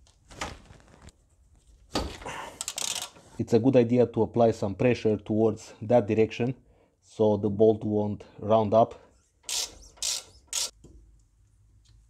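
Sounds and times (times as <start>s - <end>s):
ratchet clicking: 2.6s - 3.2s, 9.4s - 10.8s.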